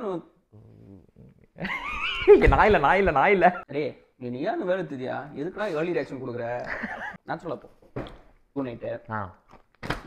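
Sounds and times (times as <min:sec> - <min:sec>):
man laughing loudly: 0:01.6 - 0:02.7, 0:06.7 - 0:07.2.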